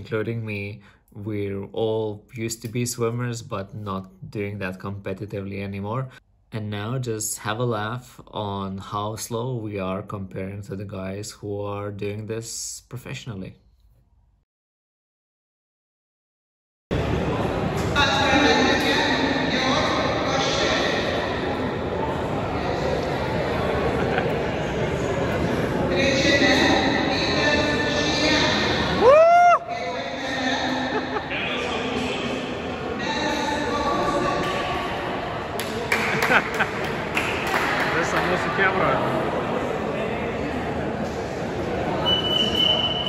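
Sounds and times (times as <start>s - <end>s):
background hubbub: 16.9s - 43.0s.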